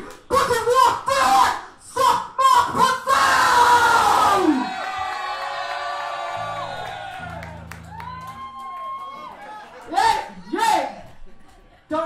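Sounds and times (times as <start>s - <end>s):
shouted vocals: 0.3s - 11.0s.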